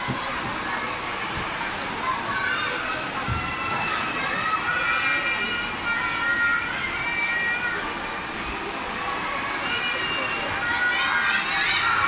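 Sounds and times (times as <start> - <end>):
hubbub of children: 0.0 - 12.0
child's high-pitched wavering call: 2.3 - 8.2, 9.3 - 12.0.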